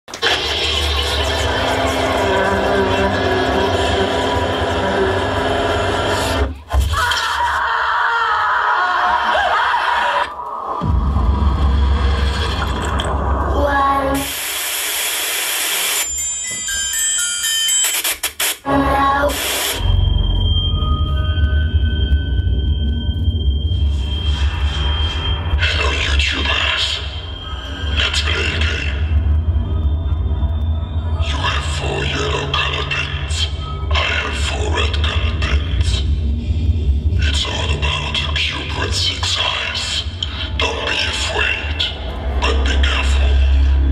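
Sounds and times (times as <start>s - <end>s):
bass: 0.0s - 7.7s, 10.7s - 14.2s, 18.7s - 43.9s.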